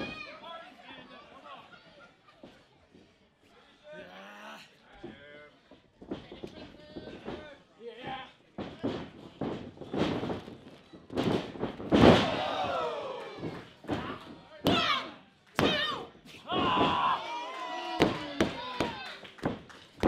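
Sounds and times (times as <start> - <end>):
wrestlers crashing onto canvas: 6.0 - 15.0, 15.6 - 17.2
people shouting: 12.1 - 19.2.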